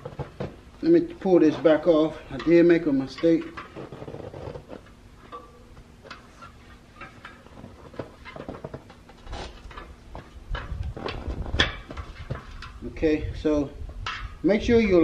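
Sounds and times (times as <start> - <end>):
rubber tire rubbing and creaking: 0.0 - 13.6.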